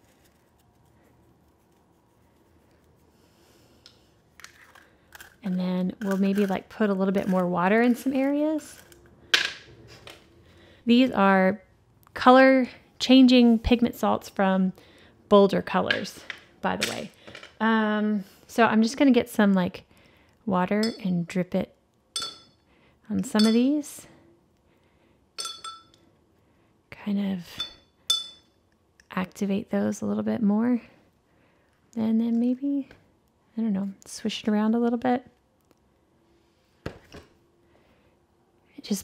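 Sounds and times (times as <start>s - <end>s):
paintbrush clinking against water jar: 20.8s - 21.1s, 22.2s - 22.6s, 23.4s - 23.7s, 25.4s - 26.0s, 27.6s - 28.4s.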